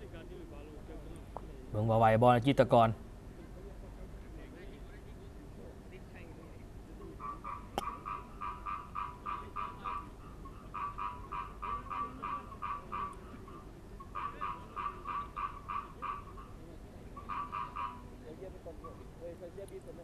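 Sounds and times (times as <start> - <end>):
frog calling in pulsed trains: 7.1 - 19.0.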